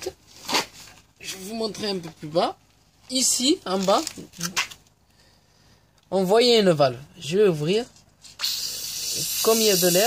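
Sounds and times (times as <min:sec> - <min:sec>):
faint hiss: 0:08.2 - 0:10.0.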